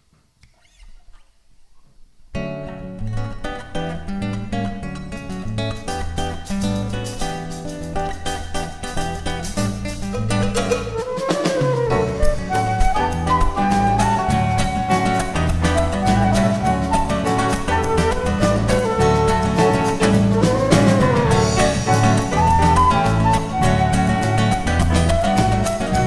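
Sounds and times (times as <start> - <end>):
acoustic guitar: 0.0 - 26.0
electric guitar: 2.4 - 26.0
drum kit: 3.2 - 26.0
flute playing: 10.7 - 26.0.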